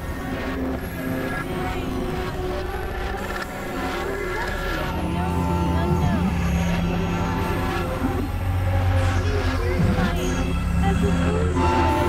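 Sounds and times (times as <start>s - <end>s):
low synthesizer drones: 0.0s - 12.0s.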